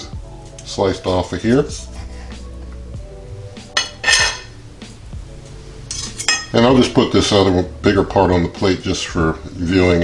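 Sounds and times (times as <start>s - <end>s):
faint background music: 0.0s - 10.0s
fork clinking on ceramic plate: 3.8s - 4.6s, 5.9s - 6.6s.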